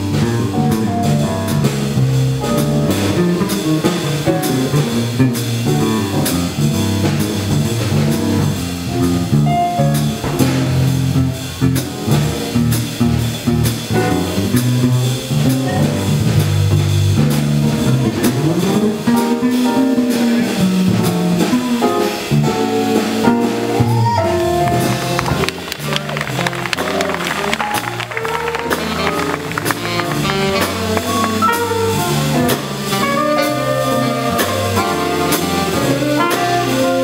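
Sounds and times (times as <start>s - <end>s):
drum kit with cymbals: 0.0s - 37.0s
walking electric bass: 0.0s - 37.0s
trumpet: 23.0s - 37.0s
saxophone: 23.6s - 37.0s.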